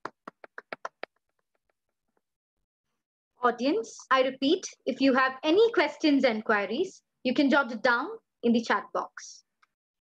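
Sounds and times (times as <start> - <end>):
person clapping quickly: 0.0 - 1.8.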